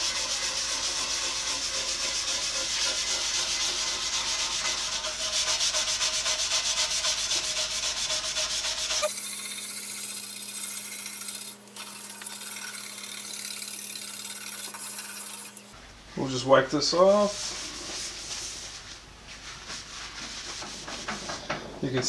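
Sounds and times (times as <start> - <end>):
scrub brush scrubbing metal: 0.0 - 15.8.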